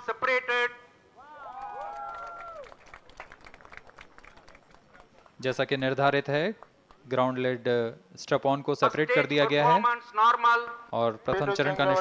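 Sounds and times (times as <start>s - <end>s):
crowd cheering and whooping: 1.2s - 2.8s
scattered clapping: 1.5s - 5.6s.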